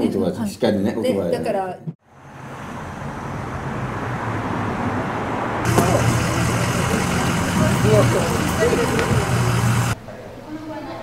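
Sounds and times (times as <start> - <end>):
traffic noise: 2.0 - 10.0
faint voices talking: 5.8 - 11.0.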